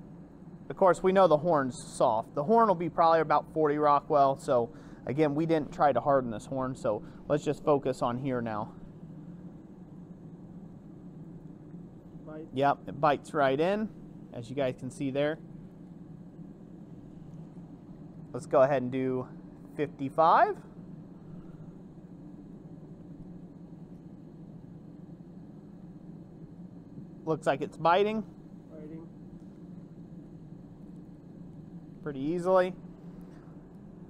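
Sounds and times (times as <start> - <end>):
low background hum: 0.0 - 34.0.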